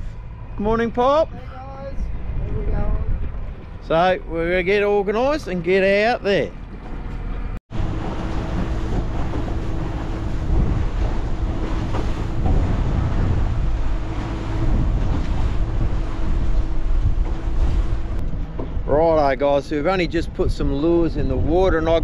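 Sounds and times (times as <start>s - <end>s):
boat engine hum: 0.0s - 22.0s
wind buffeting microphone: 0.0s - 22.0s.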